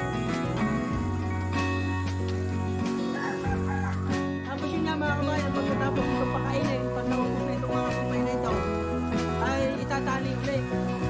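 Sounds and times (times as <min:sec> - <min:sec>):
guitar music: 0:00.0 - 0:11.0
rooster crowing: 0:03.0 - 0:04.4.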